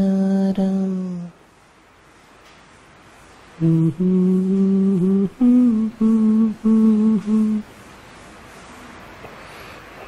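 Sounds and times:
man humming: 0.0s - 1.4s, 3.6s - 7.7s.

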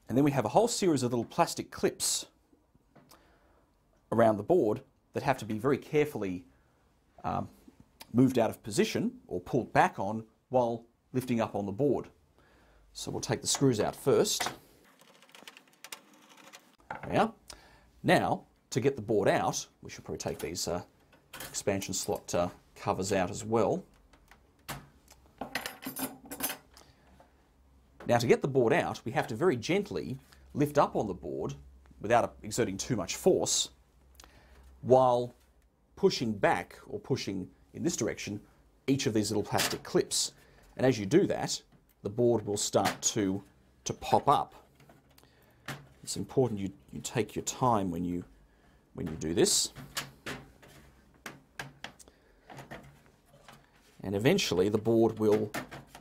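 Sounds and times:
light metallic clinks and rattles: 25.4s - 26.8s.

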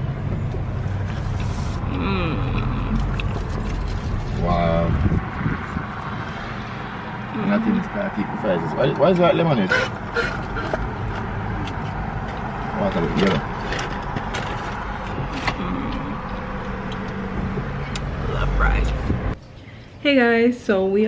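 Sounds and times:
low voices: 1.8s - 3.2s, 15.2s - 16.3s.

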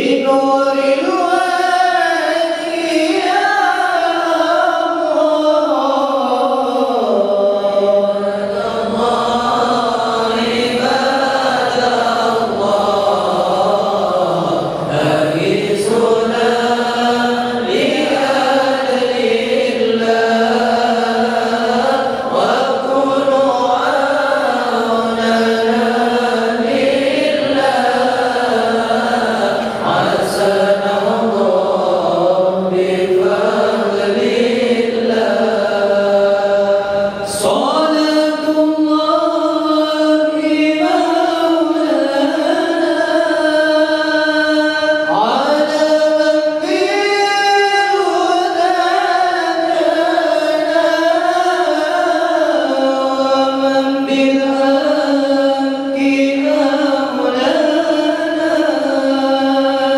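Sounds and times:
men chanting in unison: 0.0s - 59.9s.

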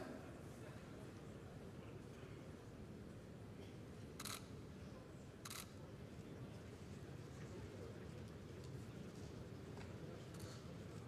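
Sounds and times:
murmur of crowd: 0.0s - 11.0s
camera shutter clicks: 4.2s - 4.4s.

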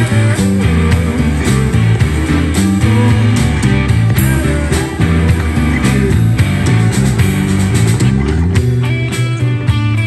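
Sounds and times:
bass line: 0.0s - 10.0s
drums keeping a steady beat: 0.0s - 10.0s
electric guitar: 0.0s - 10.0s.

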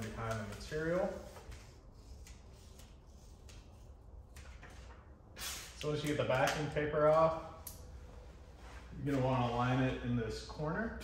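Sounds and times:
vinyl sheet rustling: 0.0s - 3.6s
low room hum: 0.0s - 11.0s.

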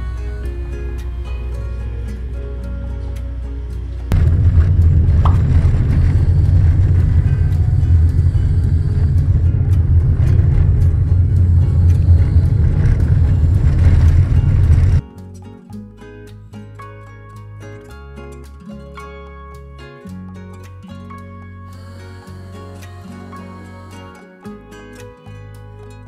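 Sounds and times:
car engine and road noise: 0.0s - 15.0s
plucked-string music: 0.0s - 26.0s.

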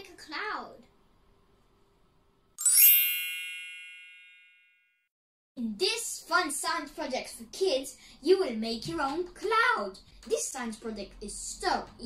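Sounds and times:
bright chime: 2.6s - 5.0s.

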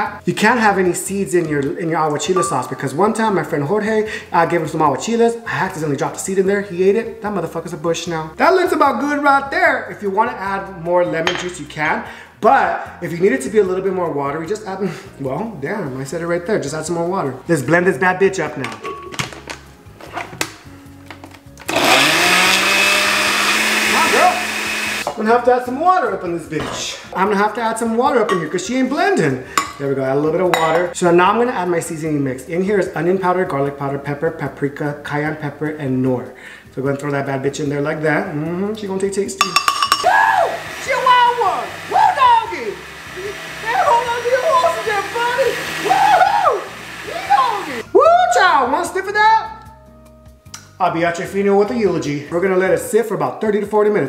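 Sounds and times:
blender motor running: 21.7s - 25.1s, 40.3s - 47.8s.

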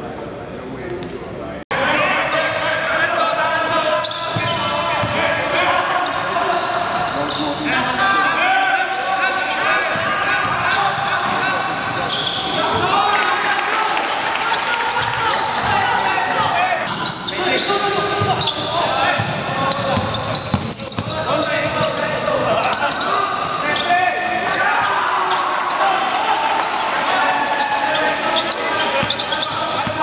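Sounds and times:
sneakers squeaking: 0.9s - 13.0s, 14.1s - 30.0s
players calling out: 1.7s - 30.0s.

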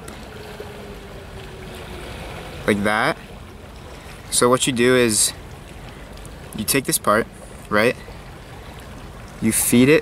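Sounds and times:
wind and water rumble: 0.0s - 10.0s.

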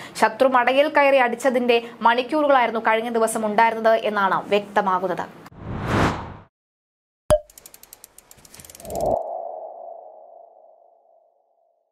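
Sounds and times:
quick run of ticks: 7.5s - 9.2s.

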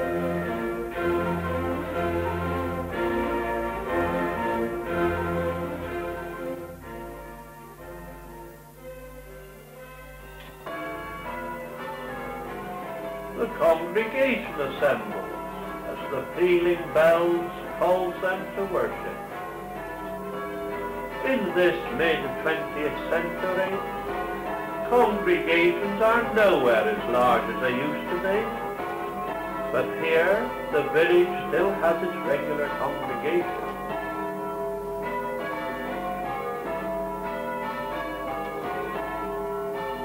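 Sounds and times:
church bells ringing: 0.0s - 40.0s.

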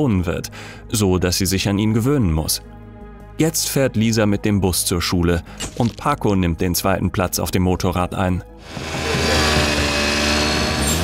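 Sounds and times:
motor scooter engine passing: 8.6s - 11.0s.

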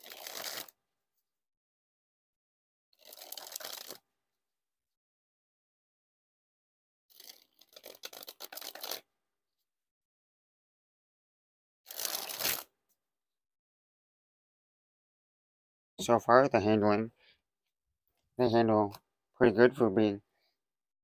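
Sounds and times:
playing cards fluttering: 0.0s - 0.7s, 3.0s - 4.0s, 7.1s - 9.0s, 11.9s - 12.7s.

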